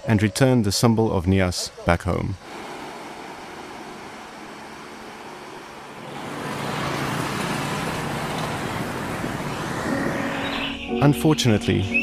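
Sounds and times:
street traffic: 1.2 - 11.0
waves on a beach: 2.4 - 10.1
motorbike and car engines passing: 2.5 - 10.8.

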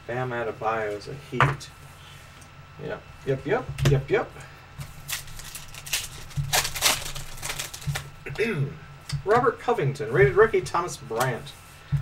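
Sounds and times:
card wrapper crinkling: 4.9 - 8.2.

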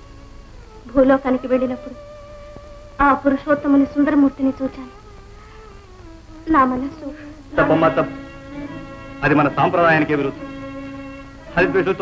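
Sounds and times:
soft background film music: 0.0 - 12.0.

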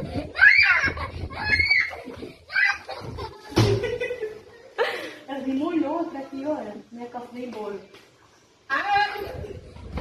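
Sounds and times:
girl squealing and laughing: 0.0 - 3.7.

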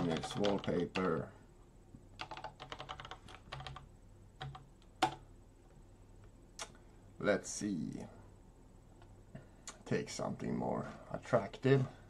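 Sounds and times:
computer keyboard typing: 0.0 - 1.3, 2.2 - 5.2.

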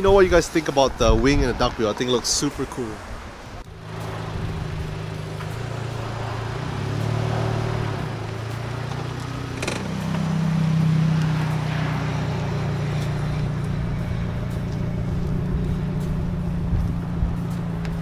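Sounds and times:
car engine running: 3.6 - 18.0.

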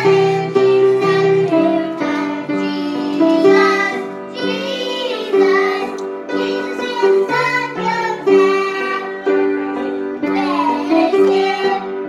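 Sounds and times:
children singing: 0.0 - 12.0
piano chords: 0.0 - 12.0.

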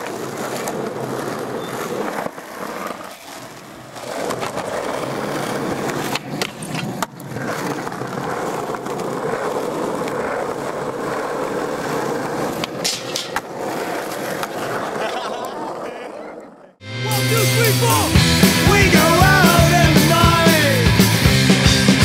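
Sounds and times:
skateboard clacks: 0.0 - 16.6
skateboard wheels on asphalt: 0.0 - 16.8, 17.8 - 22.0.

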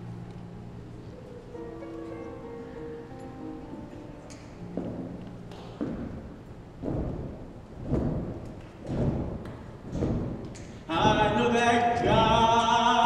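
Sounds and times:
soft thuds in steady beat: 4.7 - 12.6.

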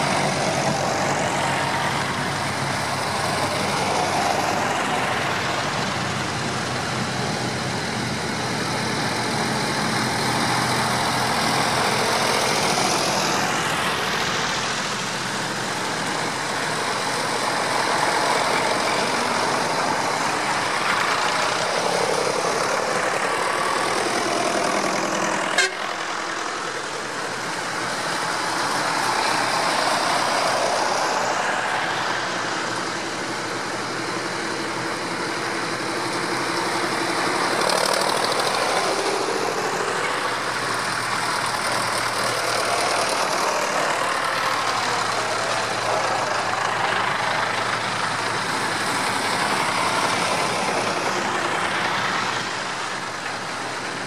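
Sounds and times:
tractor engines driving past: 0.0 - 54.0.

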